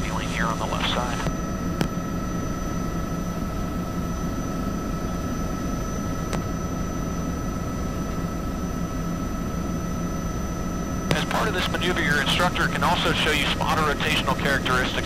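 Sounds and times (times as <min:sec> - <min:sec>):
helicopter engine and rotor noise: 0:00.0 - 0:15.0.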